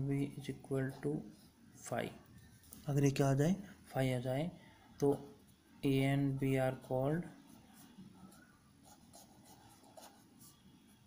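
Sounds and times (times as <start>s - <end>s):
pen scratching on paper: 7.5s - 11.0s.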